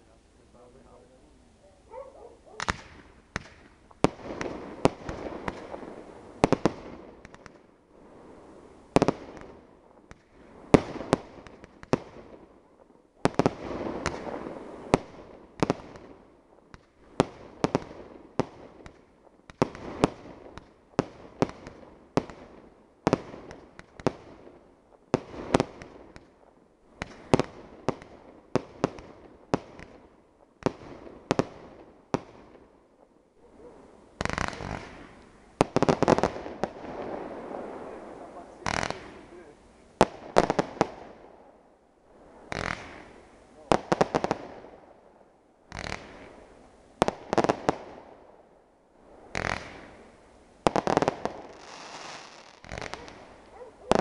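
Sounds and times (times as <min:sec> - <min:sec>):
fireworks bursting with bangs: 0:01.9 - 0:12.5, 0:13.2 - 0:33.1, 0:34.2 - 0:41.4, 0:42.3 - 0:44.9, 0:45.7 - 0:48.2, 0:49.2 - 0:54.0.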